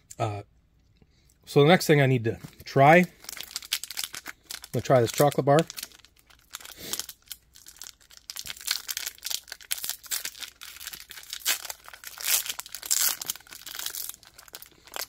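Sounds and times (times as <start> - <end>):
foil wrapper crinkling and tearing: 2.5 - 15.0.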